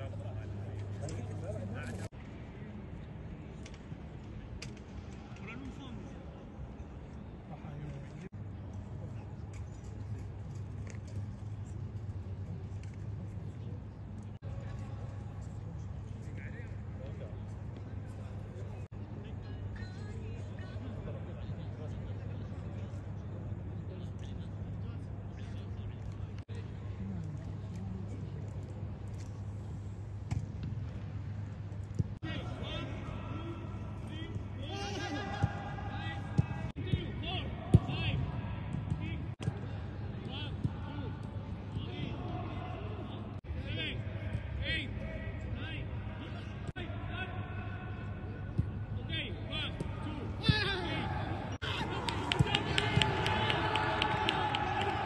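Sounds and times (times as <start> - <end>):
players shouting: 32.2 - 39.2, 49.5 - 55.0.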